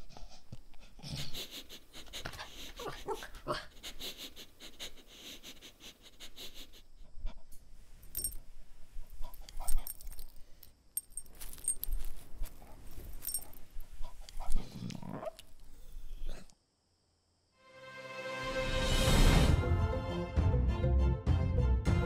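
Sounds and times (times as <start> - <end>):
dog vocalizing: 2.2 - 3.8
collar tags jingling: 8.0 - 16.1.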